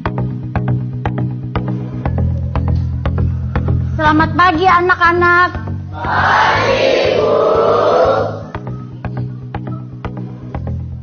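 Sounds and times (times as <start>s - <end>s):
background music: 0.0s - 11.0s
children chanting in unison: 6.0s - 8.6s.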